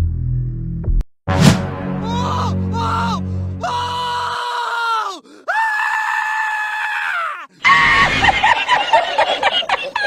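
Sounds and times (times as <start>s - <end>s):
cartoon goat scream: 2.8s - 8.2s.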